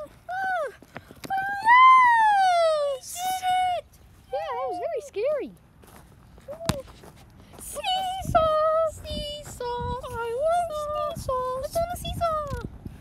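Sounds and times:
high-pitched voice singing: 7.6s - 12.7s.

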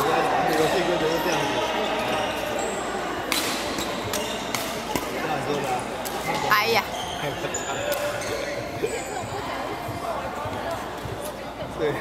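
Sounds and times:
voices echoing in hall: 0.0s - 12.0s
rackets hitting shuttlecock: 3.2s - 6.4s, 7.8s - 8.4s.

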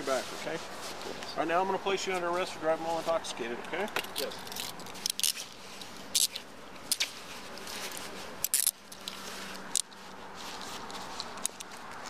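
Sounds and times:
handcuffs ratcheting clicks: 3.9s - 5.4s, 6.1s - 7.0s, 8.4s - 10.0s.

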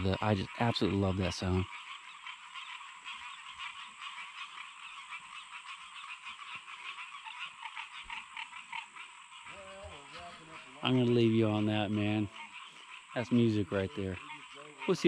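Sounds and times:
chorus of frogs calling: 0.0s - 15.0s.

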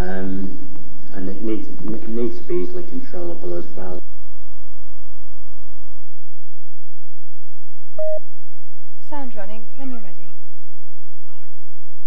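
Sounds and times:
faint low hum: 0.0s - 12.0s
short electronic beep: 8.0s - 8.2s.

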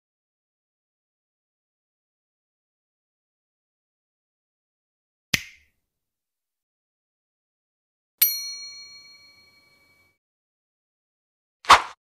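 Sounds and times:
bright bell-like ding: 8.2s - 10.2s.

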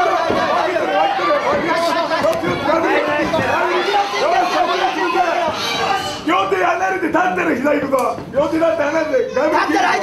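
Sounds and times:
voices shouting over one another: 0.0s - 6.5s.

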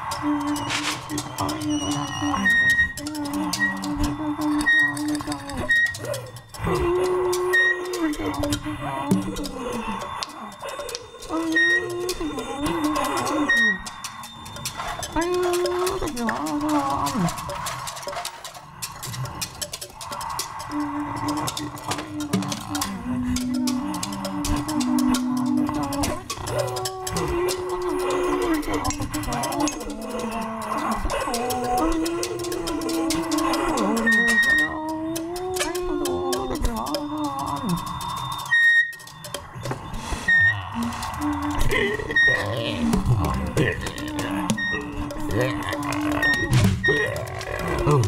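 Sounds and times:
small clicks and rattles: 0.0s - 48.0s.

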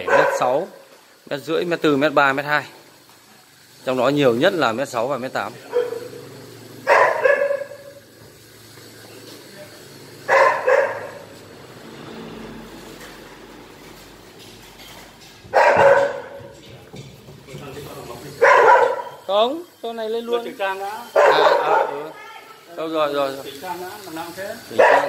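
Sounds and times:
dog barking: 0.0s - 0.8s, 5.6s - 8.0s, 10.3s - 11.4s, 15.5s - 16.6s, 18.4s - 19.3s, 21.1s - 22.2s, 24.7s - 25.0s.

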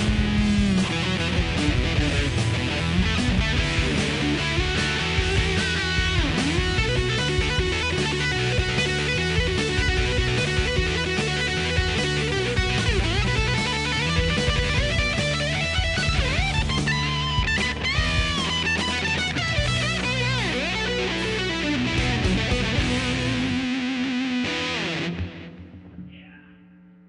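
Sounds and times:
distorted electric guitar riff: 0.0s - 27.0s.

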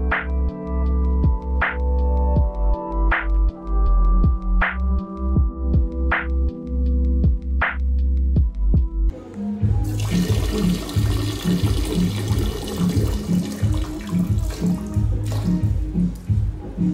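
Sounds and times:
electronic music: 0.0s - 16.9s
pulsing bass beat: 2.4s - 9.1s, 9.7s - 16.9s.

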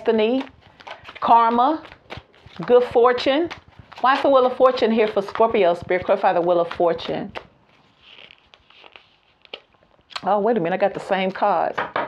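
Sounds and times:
cards rustling: 0.0s - 11.6s
cards tapping down: 0.1s - 7.5s.

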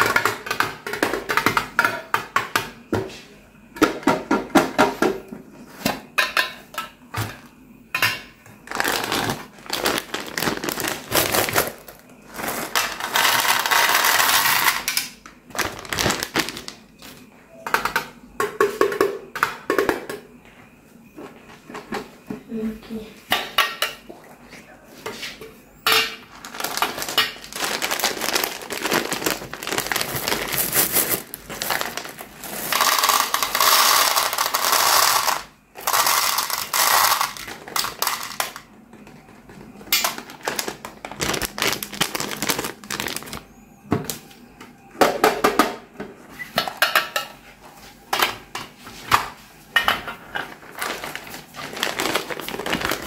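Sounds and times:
paper pouch crinkling: 8.7s - 11.9s, 15.5s - 16.8s, 26.3s - 34.6s, 40.2s - 43.5s, 50.6s - 53.0s
candies pouring into metal tin: 8.7s - 16.7s, 26.3s - 38.6s, 40.0s - 43.4s, 50.7s - 53.0s
candy clicks: 40.0s - 43.4s.

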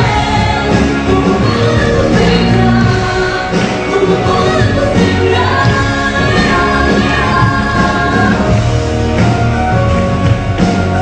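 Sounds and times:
woman singing: 0.0s - 8.6s
pop band playing: 0.0s - 11.0s.

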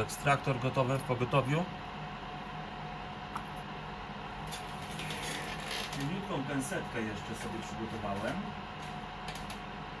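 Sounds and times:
rework station humming: 0.0s - 10.0s.

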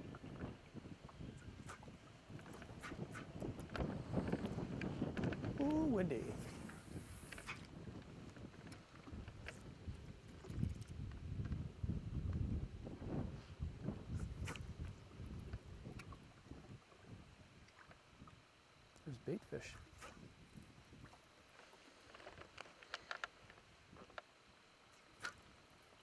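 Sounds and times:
wind buffeting microphone: 0.0s - 17.4s.

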